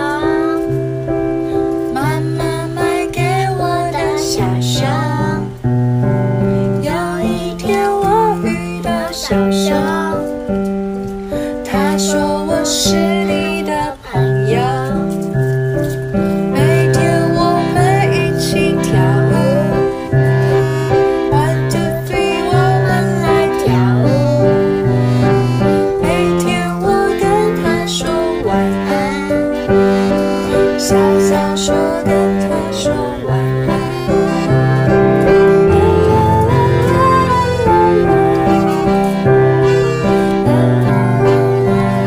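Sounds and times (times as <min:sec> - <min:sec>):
keyboard accompaniment: 0:00.0 - 0:42.0
person singing: 0:00.0 - 0:42.0
piano chords: 0:00.0 - 0:42.0.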